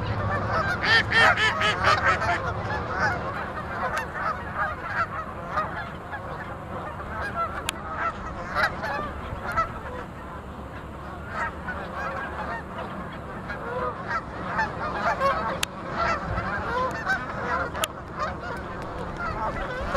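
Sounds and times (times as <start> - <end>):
flock of geese honking: 0.0 - 19.9.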